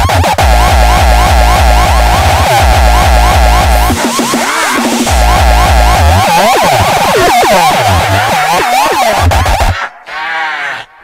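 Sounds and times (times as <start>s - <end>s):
distorted kick drums: 0.0s - 9.8s
held voice-like sample: 3.2s - 10.9s.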